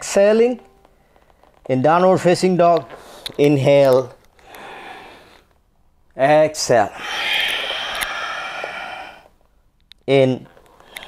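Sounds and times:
person exhaling breathily: 0:06.9 - 0:09.3.

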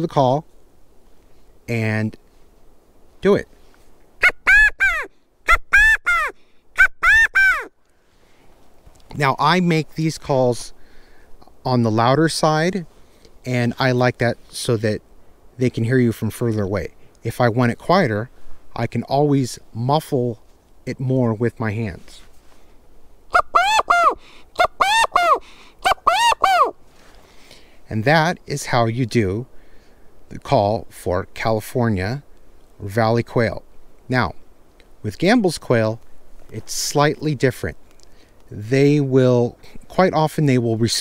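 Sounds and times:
quail call whistle: 0:04.2 - 0:07.8, 0:23.3 - 0:26.8.

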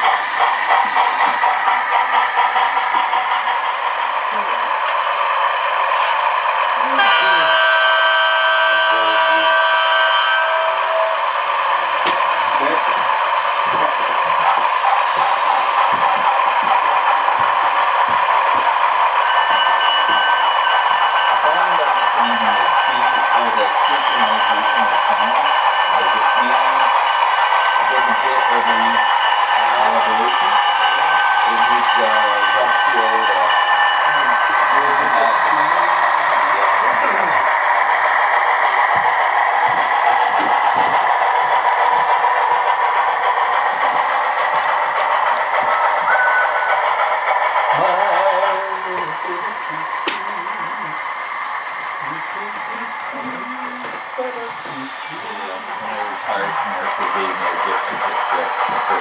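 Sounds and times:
model train humming: 0:00.0 - 0:59.0
low conversation: 0:02.7 - 0:07.8, 0:08.7 - 0:09.8, 0:10.7 - 0:19.0, 0:20.8 - 0:59.0.

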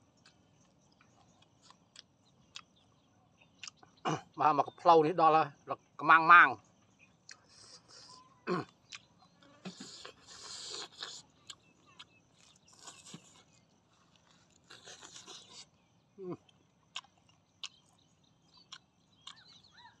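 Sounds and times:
chewing meat: 0:00.0 - 0:04.4, 0:07.2 - 0:20.0
wet mouth clicks and smacks: 0:03.6 - 0:03.8, 0:17.0 - 0:19.7
person humming mm: 0:09.6 - 0:11.2.

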